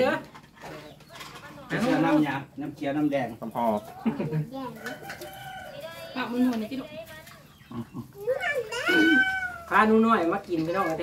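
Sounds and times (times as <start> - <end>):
high-pitched animal call: 7.7 - 9.8.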